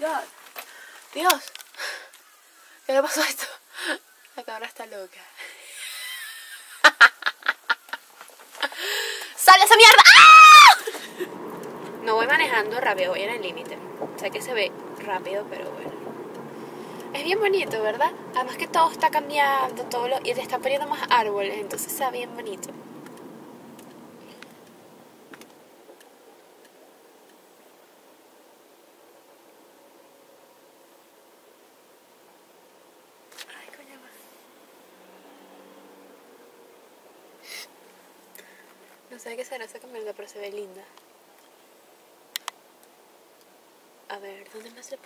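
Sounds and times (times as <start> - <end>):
handling noise hiss: 5.3 - 29.5
woman giggling: 5.4 - 8.0
low hiss inside car: 10.6 - 45.0
turn signal clicking: 11.4 - 22.0, 22.8 - 24.8.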